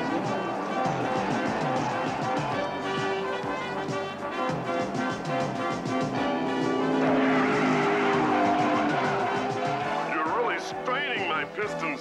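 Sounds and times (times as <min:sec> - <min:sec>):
tyres skidding and squealing: 0:00.0 - 0:11.5
cartoon race-car engine: 0:04.7 - 0:10.8.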